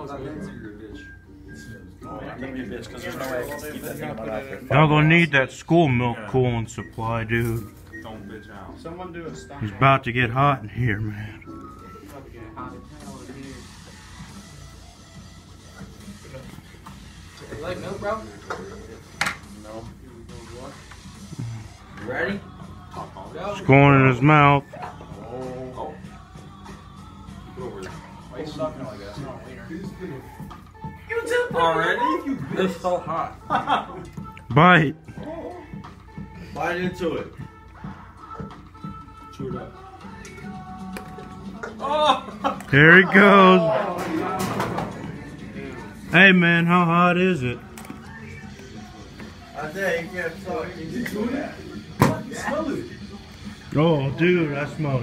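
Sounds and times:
background music: 0:00.0 - 0:55.0
faint voices murmuring: 0:10.8 - 0:23.8, 0:24.6 - 0:46.2, 0:47.2 - 0:55.0.

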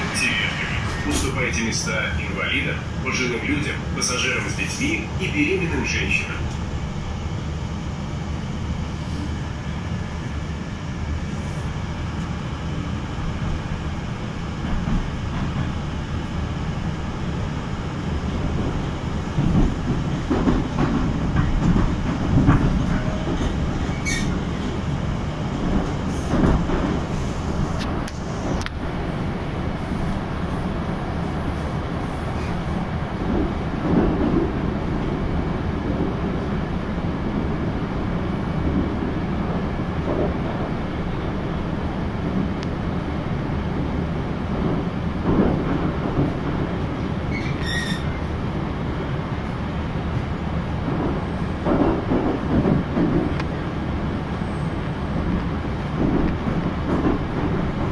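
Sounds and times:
train rumbling through tunnel: 0:00.0 - 0:57.9.

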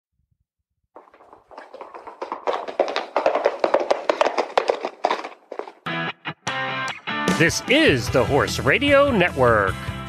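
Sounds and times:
rapid sharp taps and knocks: 0:01.0 - 0:05.9.

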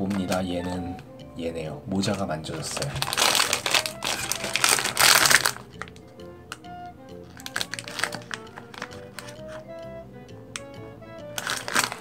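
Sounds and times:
foil wrapper crinkling: 0:00.0 - 0:00.6, 0:02.5 - 0:06.1, 0:07.3 - 0:09.7, 0:11.4 - 0:12.0
background music: 0:00.0 - 0:12.0.

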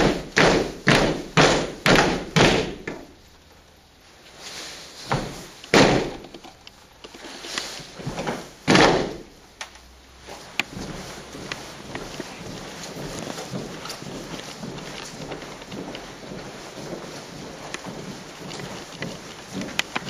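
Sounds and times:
boots stamping together: 0:00.0 - 0:03.2, 0:05.0 - 0:07.2, 0:07.8 - 0:09.4, 0:10.2 - 0:20.0.

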